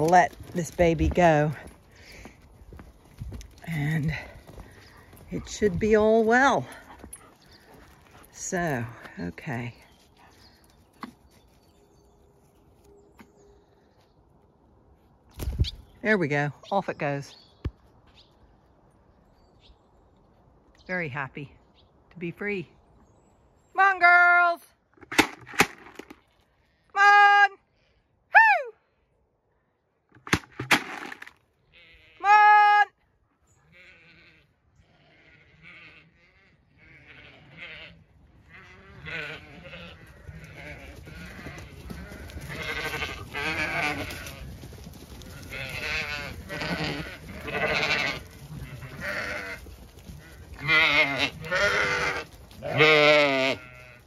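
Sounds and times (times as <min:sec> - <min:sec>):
sheep bleating: 0:33.7 - 0:44.5, 0:45.2 - 0:54.0.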